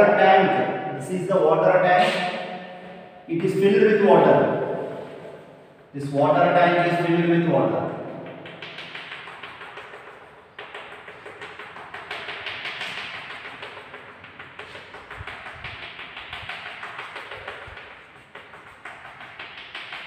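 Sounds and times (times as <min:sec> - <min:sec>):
chalk tapping on chalkboard: 0:07.9 - 0:20.0.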